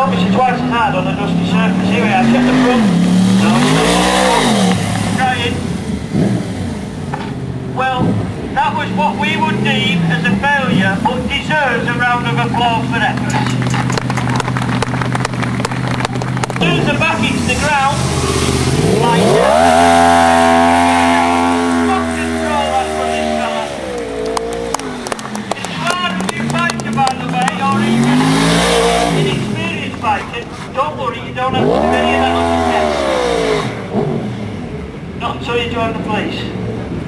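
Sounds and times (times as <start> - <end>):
motorcycle engine revving: 0.0 - 35.3.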